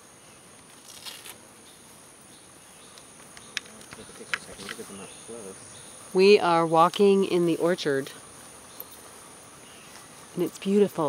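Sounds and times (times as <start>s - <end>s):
insects chorus: 0.0s - 11.0s
faint voices: 3.6s - 5.6s.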